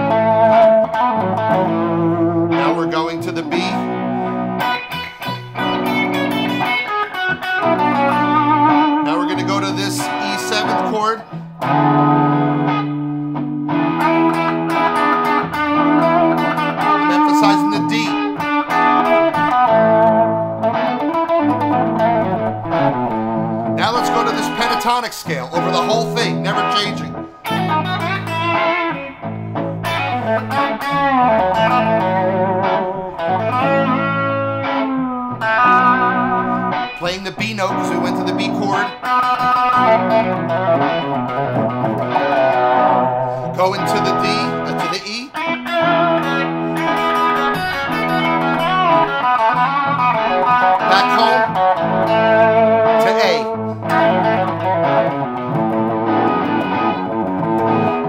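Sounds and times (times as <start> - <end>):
bass and chords backing track: 0.0 - 58.0
electric guitar lead solo: 0.0 - 58.0.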